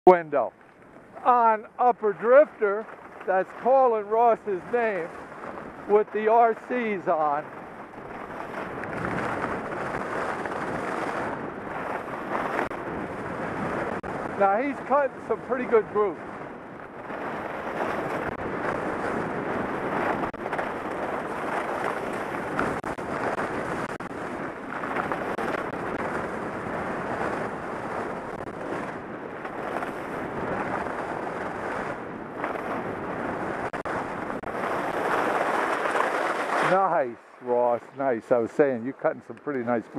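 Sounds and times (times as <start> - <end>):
wind rushing over microphone: 0.1 - 39.9
skis scraping on snow: 0.2 - 39.9.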